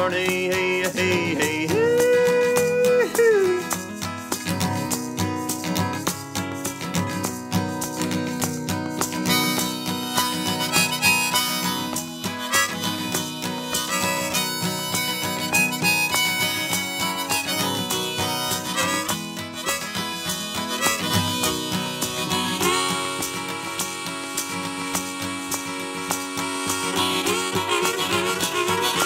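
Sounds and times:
harmonica melody: 0.0 - 29.0
strummed acoustic guitar: 0.0 - 29.0.

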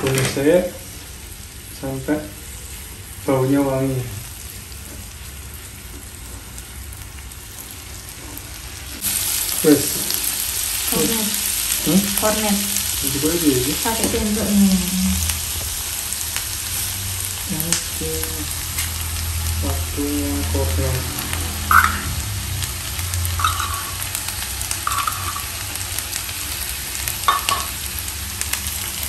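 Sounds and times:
onion and garlic sizzling in pan: 0.0 - 29.0.

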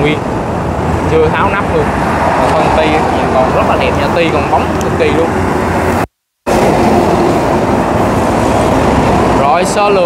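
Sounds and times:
passing road traffic: 0.0 - 10.0.

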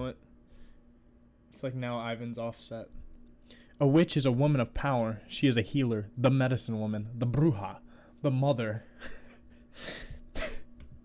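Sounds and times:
man laughing breathily: 8.9 - 10.8.

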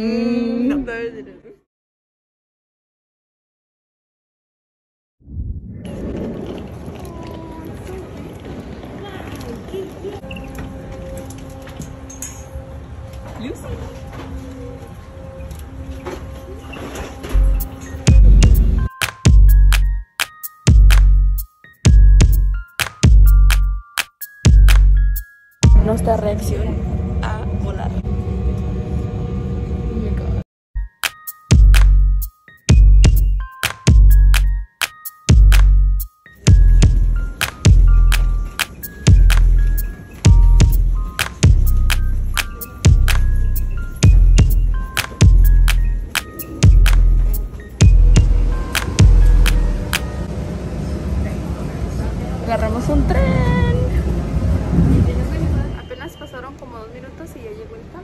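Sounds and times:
engine and airflow rumble: 45.4 - 55.8.

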